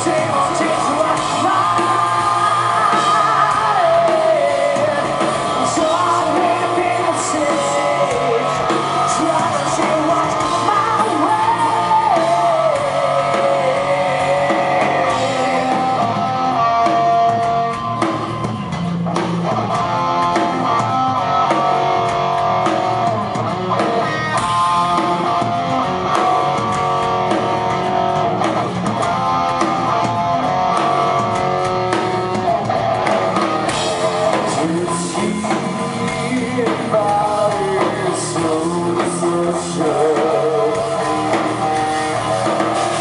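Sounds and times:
bass guitar: 0:00.0 - 0:43.0
drum kit with cymbal hits: 0:00.0 - 0:43.0
electric guitar sustained notes: 0:00.0 - 0:43.0.

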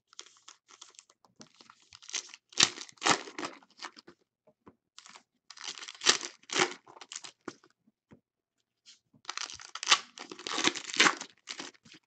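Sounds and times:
foil wrappers tearing and crinkling: 0:09.3 - 0:11.8.

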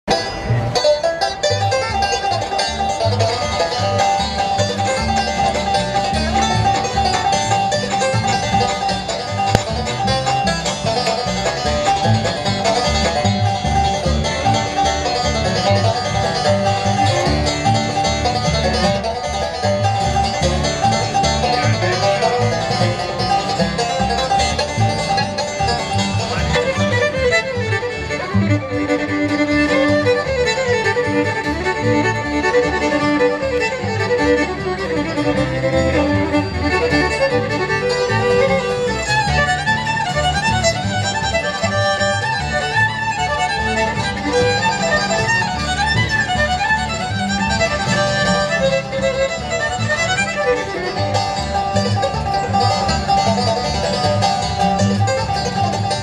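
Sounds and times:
banjo picking: 0:00.0 - 0:56.0
bluegrass band playing: 0:00.0 - 0:56.0.

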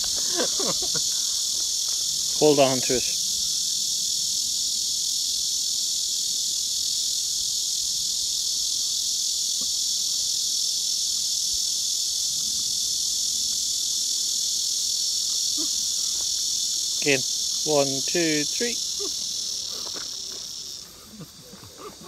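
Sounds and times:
insects chorus droning: 0:00.0 - 0:22.0.

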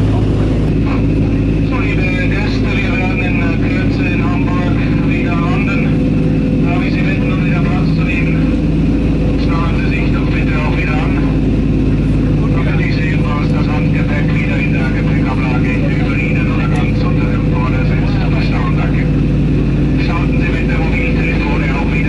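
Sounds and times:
aircraft engines droning: 0:00.0 - 0:22.0
indistinct voices: 0:00.0 - 0:22.0.

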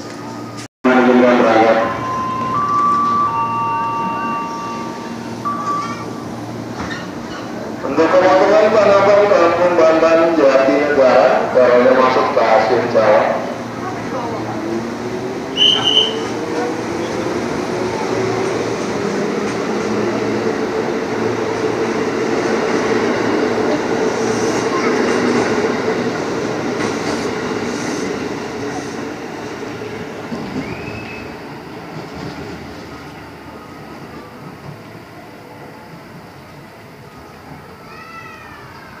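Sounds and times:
electric train passing: 0:00.0 - 0:39.0
brief shrill tone: 0:01.8 - 0:06.3.

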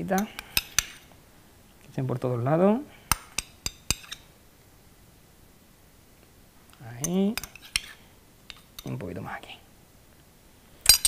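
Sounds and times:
metal spoon tapping bowl: 0:03.1 - 0:04.2.

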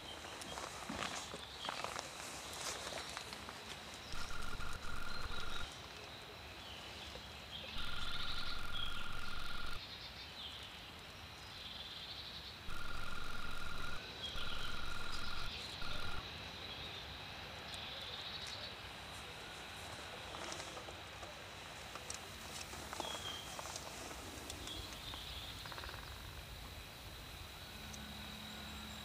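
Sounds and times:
faint high chirps: 0:04.1 - 0:05.7, 0:07.7 - 0:09.8, 0:12.7 - 0:16.2
steady high whine: 0:04.1 - 0:05.7, 0:07.8 - 0:09.8, 0:12.7 - 0:16.2
animal trilling: 0:04.2 - 0:05.7, 0:07.8 - 0:09.8, 0:12.7 - 0:16.2.

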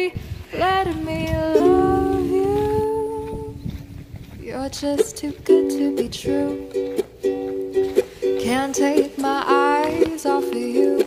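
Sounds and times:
voices humming a chord: 0:01.6 - 0:03.8.

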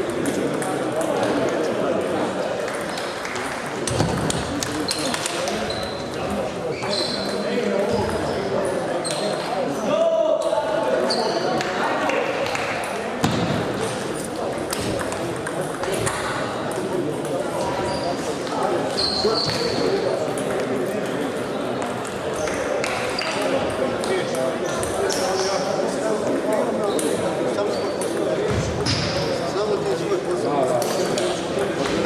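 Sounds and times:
table tennis balls clicking: 0:00.0 - 0:05.7, 0:14.6 - 0:17.4
murmur of voices: 0:00.0 - 0:32.0.

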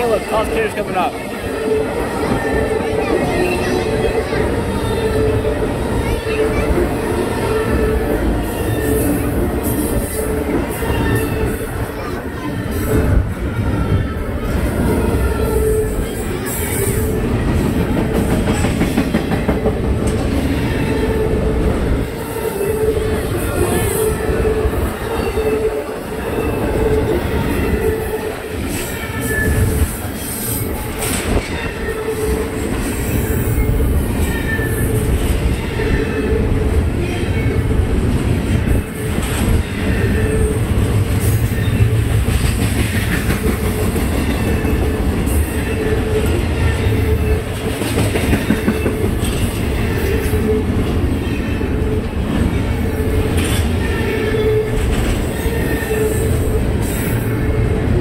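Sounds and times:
steel wheels rumbling on rail: 0:00.0 - 0:58.0
high wheel squeal: 0:22.2 - 0:37.7, 0:53.4 - 0:57.6.

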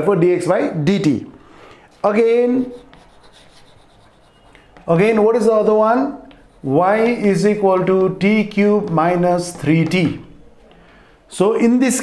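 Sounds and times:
man speaking: 0:00.0 - 0:01.4, 0:02.0 - 0:02.9, 0:04.9 - 0:10.4, 0:11.3 - 0:12.0
chalk scratching on blackboard: 0:01.8 - 0:05.4, 0:06.1 - 0:07.5.

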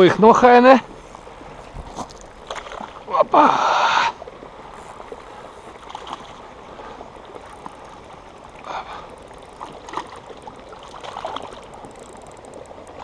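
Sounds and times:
fish splashing in water: 0:00.8 - 0:13.0.

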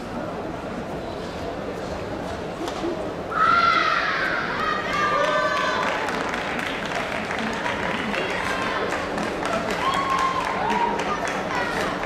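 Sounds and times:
background murmur: 0:00.0 - 0:12.0.

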